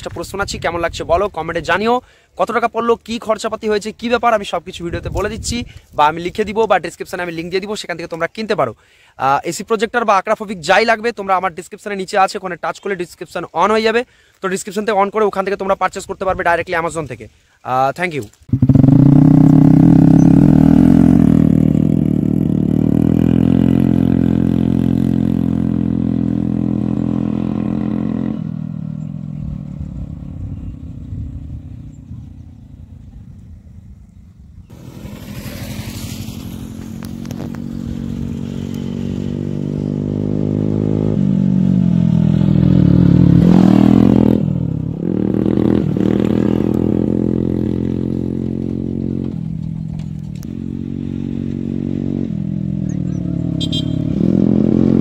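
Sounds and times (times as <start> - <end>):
scooter engine pulling away: 18.5 - 32.2, 34.7 - 49.7
motorbike passing by: 18.5 - 33.6, 34.7 - 55.0.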